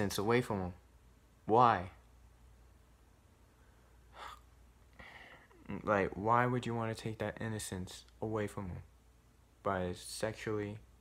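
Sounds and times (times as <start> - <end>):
man's sharp breath: 4.0 - 5.6.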